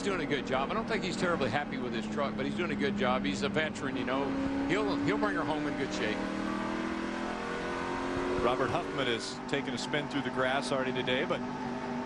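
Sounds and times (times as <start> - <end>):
race truck engine at speed: 0.0 - 12.0
road and wind noise: 0.0 - 12.0.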